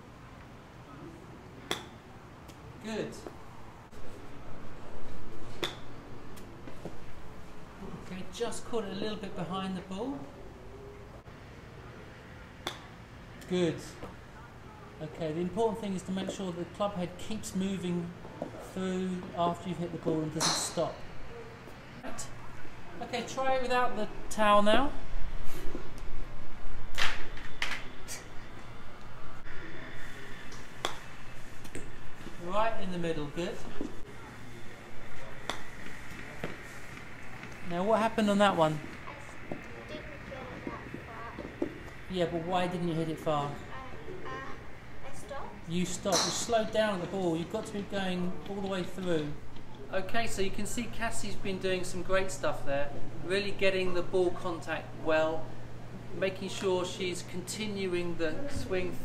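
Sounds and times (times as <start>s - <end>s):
golf club striking ball: 20.4s - 20.7s, 46.1s - 46.5s.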